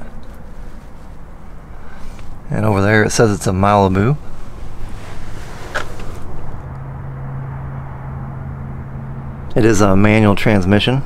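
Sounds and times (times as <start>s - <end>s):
low steady rumbling: 0.0s - 11.0s.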